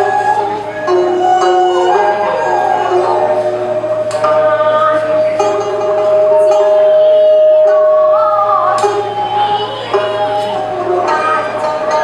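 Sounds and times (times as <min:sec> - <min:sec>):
bowed fiddle: 0:00.0 - 0:12.0
end-blown flute: 0:00.0 - 0:12.0
long held note: 0:00.0 - 0:12.0
plucked lutes: 0:00.0 - 0:12.0.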